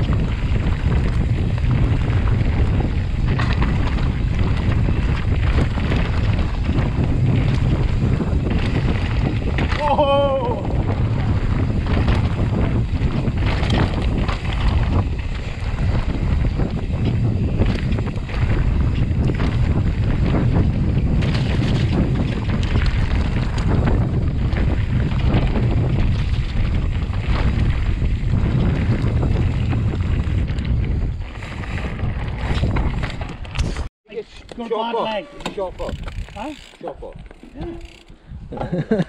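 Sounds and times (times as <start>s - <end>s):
bike clattering over rocks: 0.0s - 33.8s, 35.4s - 38.1s
wind rumbling on microphone: 0.0s - 33.9s, 35.0s - 39.0s
tyres running over dirt: 0.0s - 39.0s.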